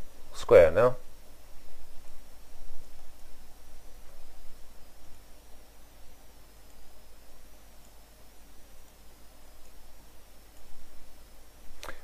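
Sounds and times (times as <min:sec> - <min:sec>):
faint high whine: 0:00.0 - 0:12.0
low mains hum: 0:00.0 - 0:12.0
microphone hiss: 0:00.0 - 0:12.0.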